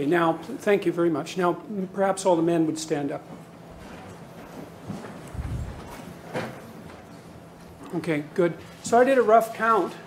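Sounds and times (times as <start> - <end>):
crowd shuffling: 3.7 - 7.8.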